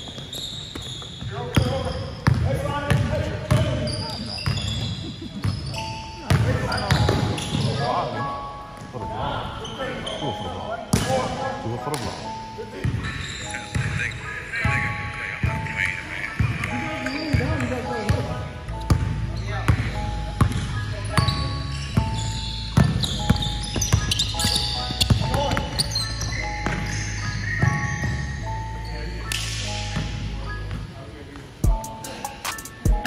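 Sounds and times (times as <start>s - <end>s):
basketball bouncing on hardwood: 22.8s - 26.9s.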